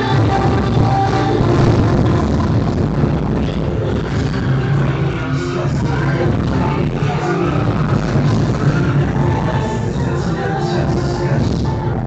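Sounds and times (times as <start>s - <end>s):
distorted noisy rush with heavy bass: 0.0s - 12.0s.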